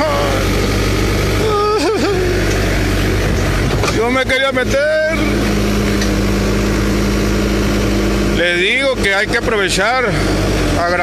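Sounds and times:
backhoe diesel engine running: 0:00.0 - 0:11.0.

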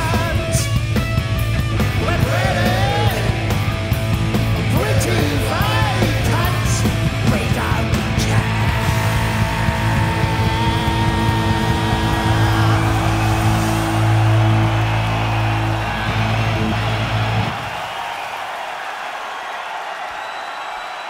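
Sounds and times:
crowd noise: 0:00.0 - 0:21.0.

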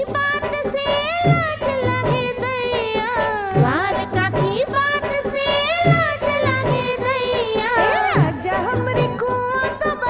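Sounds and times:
woman singing: 0:00.0 - 0:10.0
steady drum beat: 0:00.4 - 0:10.0.

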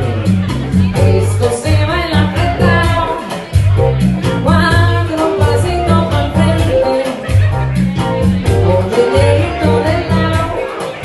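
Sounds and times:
low bass notes: 0:00.0 - 0:10.6
keyboard: 0:00.0 - 0:11.0
woman singing: 0:00.9 - 0:03.6, 0:04.3 - 0:07.5, 0:08.4 - 0:11.0.

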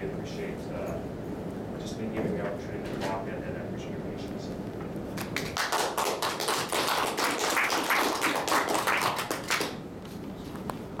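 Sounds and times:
audience applauding: 0:05.2 - 0:09.8.

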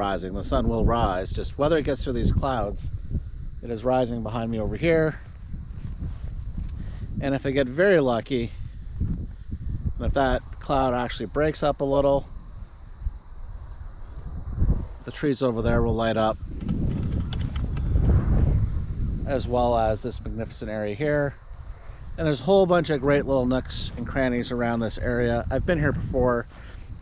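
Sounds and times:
low rumble on microphone: 0:00.0 - 0:27.0
man speaking: 0:03.6 - 0:05.3, 0:07.2 - 0:08.6, 0:10.0 - 0:12.3, 0:15.0 - 0:16.4, 0:19.3 - 0:21.4, 0:22.2 - 0:26.5.

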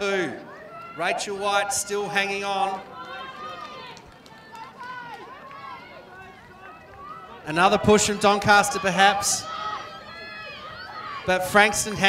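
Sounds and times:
distant spectators cheering: 0:00.0 - 0:12.0.

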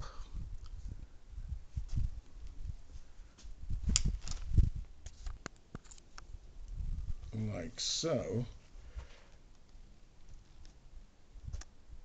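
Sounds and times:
wind buffeting microphone: 0:00.0 - 0:05.1, 0:06.3 - 0:07.5
handling noise of rifle: 0:03.4 - 0:06.3.

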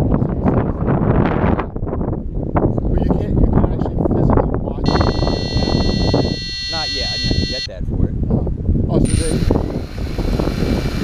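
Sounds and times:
high-pitched electronic beep: 0:04.9 - 0:07.7.

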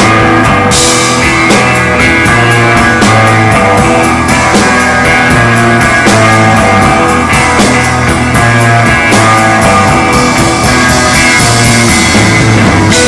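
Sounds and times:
held bass notes: 0:00.0 - 0:13.0
rock band playing instrumental: 0:00.0 - 0:13.0.

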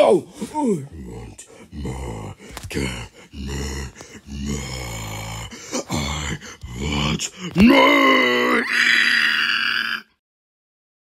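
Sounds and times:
high scream: 0:07.6 - 0:10.1.

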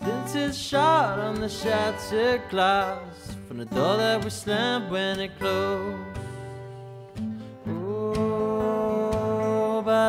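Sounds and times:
acoustic guitars strummed: 0:00.0 - 0:10.0.

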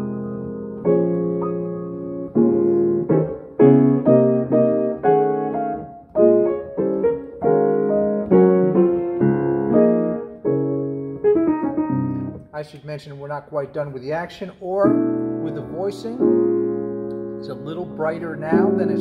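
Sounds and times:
grand piano playing: 0:00.0 - 0:19.0.

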